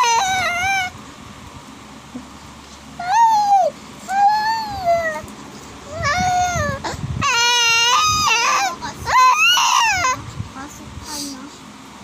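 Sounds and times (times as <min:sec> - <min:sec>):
baby cooing and squealing: 0:00.0 - 0:00.9, 0:03.0 - 0:05.2, 0:05.9 - 0:10.2.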